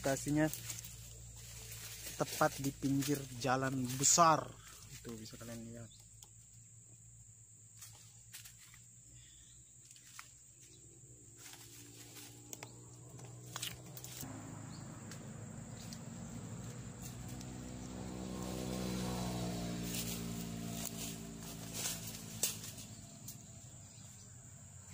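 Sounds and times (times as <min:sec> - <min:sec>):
vehicle engine passing by: 0:00.0 - 0:05.9, 0:11.4 - 0:24.9.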